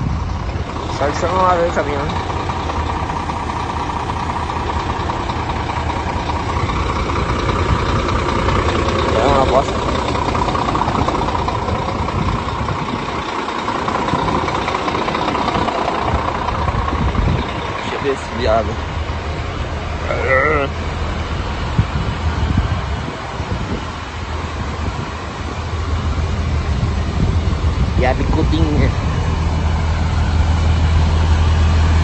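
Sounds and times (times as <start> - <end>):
diesel truck engine idling: 0.0 - 32.0.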